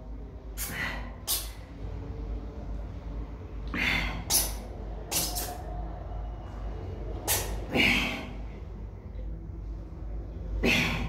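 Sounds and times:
steady low hum: 0:00.0 - 0:11.0
man breathing hard: 0:03.6 - 0:05.6.

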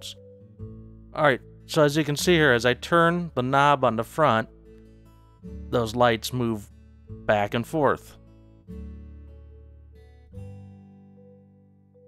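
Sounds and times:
acoustic guitar chords strummed: 0:00.0 - 0:12.0.

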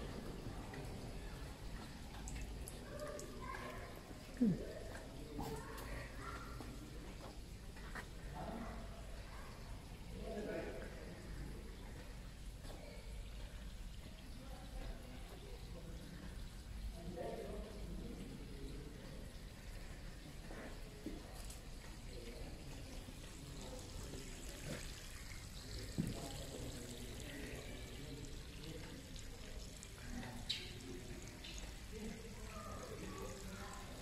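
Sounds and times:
trickle of running water: 0:00.0 - 0:34.0.

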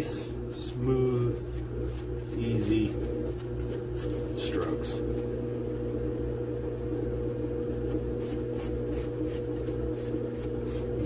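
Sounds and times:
low electrical hum: 0:00.0 - 0:11.0
paintbrush scratching on foam: 0:01.1 - 0:05.4, 0:07.8 - 0:11.0.

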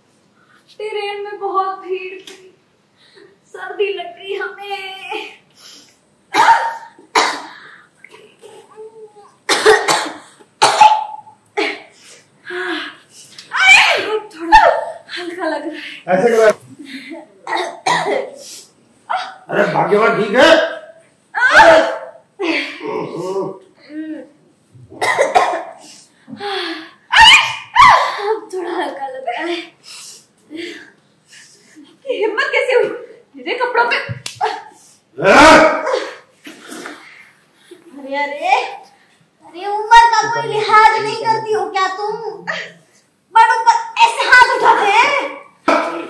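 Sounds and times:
woman coughing hard: 0:06.3 - 0:07.6, 0:09.5 - 0:11.9, 0:17.5 - 0:18.4, 0:24.9 - 0:25.8.

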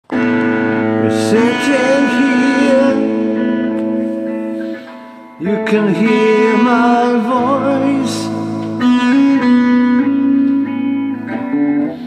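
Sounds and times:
electric guitar chord ringing: 0:00.0 - 0:12.0
wavering guitar melody note: 0:00.1 - 0:12.0.

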